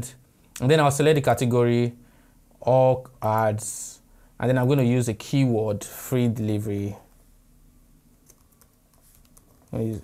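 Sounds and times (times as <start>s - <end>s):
typing on computer keyboard: 8.2s - 9.8s.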